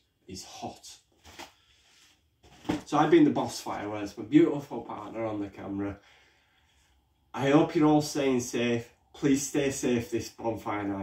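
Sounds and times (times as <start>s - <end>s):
man talking: 0.3s - 1.1s, 2.7s - 6.0s, 7.4s - 11.0s.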